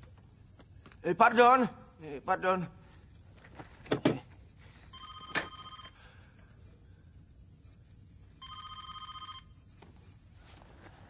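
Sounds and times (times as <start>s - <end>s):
telephone ringing: 4.9s - 6.0s, 8.4s - 9.7s.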